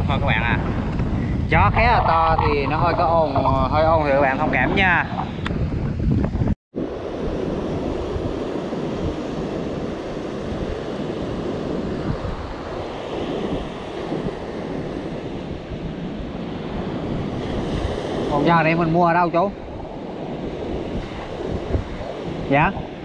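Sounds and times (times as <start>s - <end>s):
wind buffeting microphone: 0.0s - 23.0s
surf breaking on beach: 6.8s - 23.0s.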